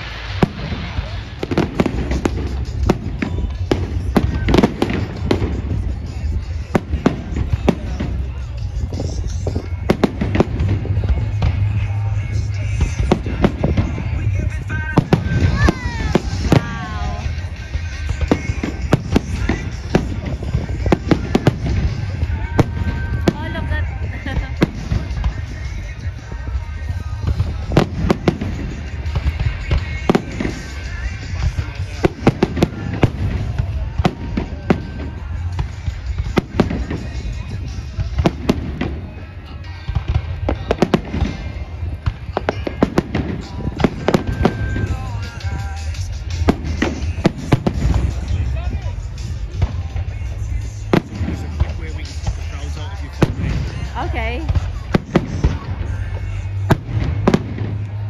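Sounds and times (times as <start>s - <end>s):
fireworks bangs and crackling: 0.0s - 58.0s
low rumble: 0.0s - 58.0s.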